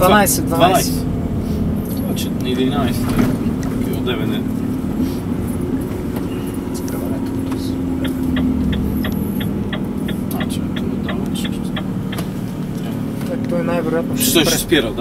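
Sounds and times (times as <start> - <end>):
low road rumble: 0.0 - 15.0
truck engine drone: 0.0 - 15.0.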